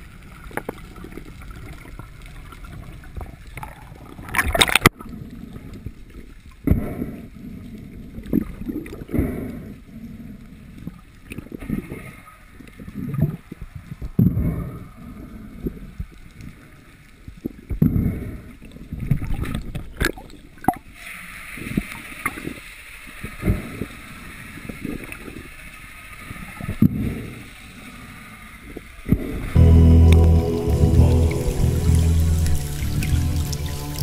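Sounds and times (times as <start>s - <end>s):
sharp burst of bright noise: 29.6s - 34.0s.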